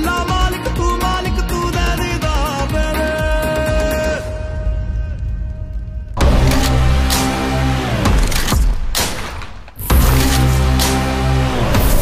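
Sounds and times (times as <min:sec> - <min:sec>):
low rumble: 0:04.1 - 0:08.4.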